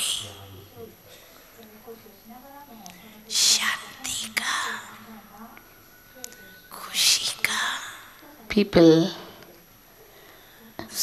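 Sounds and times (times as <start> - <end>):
person whispering: 0.0 - 0.6, 3.3 - 5.1, 6.7 - 8.1.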